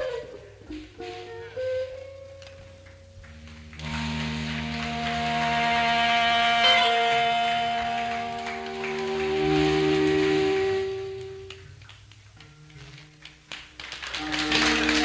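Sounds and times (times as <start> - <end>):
band playing sustained chords: 0.0 - 13.2, 14.1 - 15.0.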